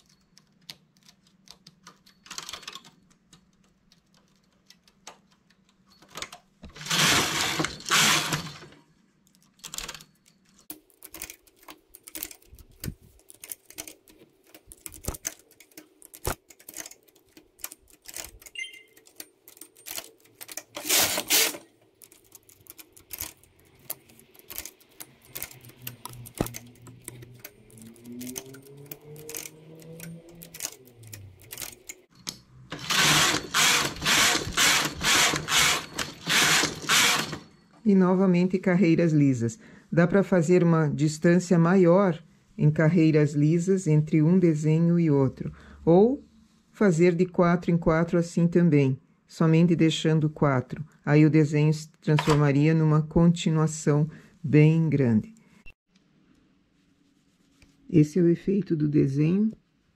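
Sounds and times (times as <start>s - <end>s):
knitting carriage rushing: 5.9s - 8.8s, 10.8s - 37.5s
small metallic clicks: 8.3s - 37.5s.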